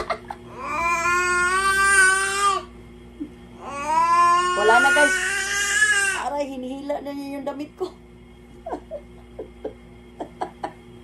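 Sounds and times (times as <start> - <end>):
baby crying: 0.5 - 2.7, 3.6 - 6.3.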